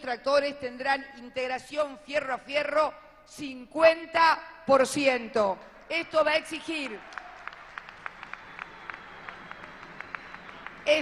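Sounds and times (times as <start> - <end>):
people clapping: 6.5 - 11.0.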